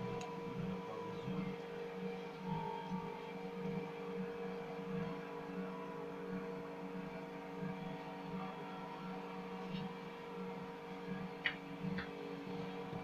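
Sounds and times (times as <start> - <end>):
machine hum: 0.0 - 13.0.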